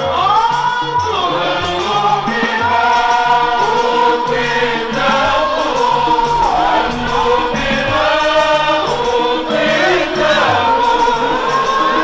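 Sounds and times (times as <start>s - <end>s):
men chanting through microphones: 0.0s - 12.0s.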